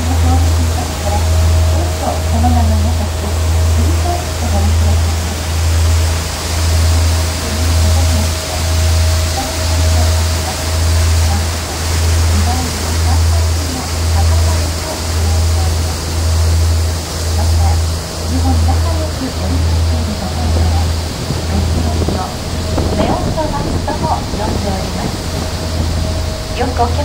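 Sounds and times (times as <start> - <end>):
boat engine drone: 0.0 - 27.0
water rushing: 0.0 - 27.0
wind: 0.0 - 27.0.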